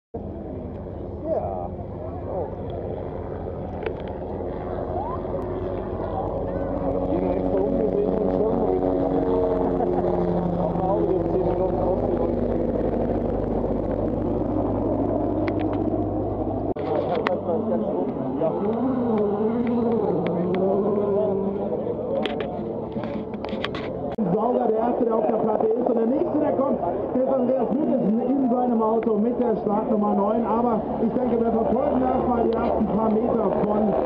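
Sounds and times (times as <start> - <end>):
chatter of people: 0.2 - 16.0, 16.7 - 34.0
portable generator humming: 0.2 - 25.2.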